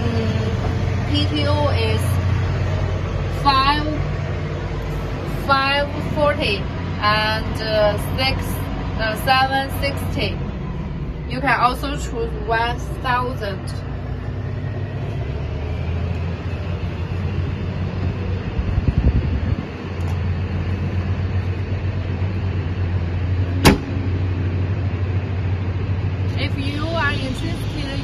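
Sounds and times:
diesel tractor engine idling: 0.0s - 28.0s
cab door shutting: 23.6s - 24.1s.

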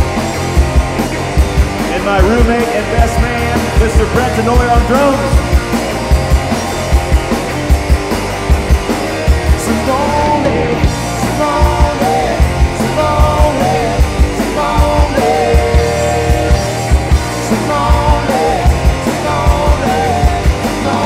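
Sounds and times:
bass guitar: 0.0s - 21.0s
electric guitar lead: 0.0s - 21.0s.

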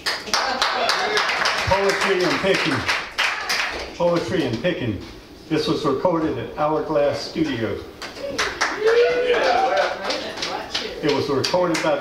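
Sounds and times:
audience clapping: 0.0s - 4.5s, 8.0s - 12.0s.

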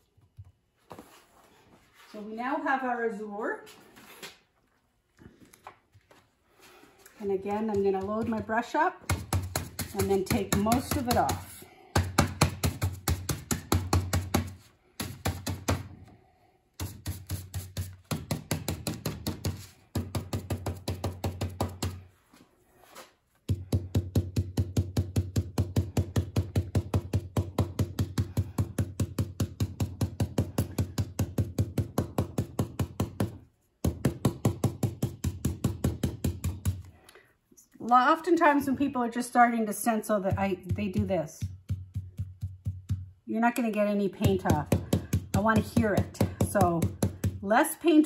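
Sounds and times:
stencil brush tapping fabric: 7.5s - 15.9s, 16.8s - 22.0s, 40.3s - 47.5s.

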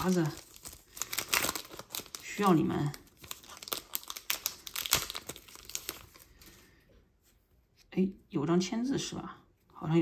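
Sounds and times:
foil wrapper crinkling and tearing: 0.0s - 6.6s.

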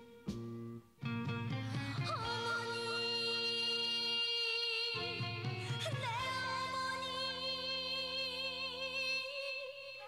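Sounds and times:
backing music: 0.0s - 4.0s.

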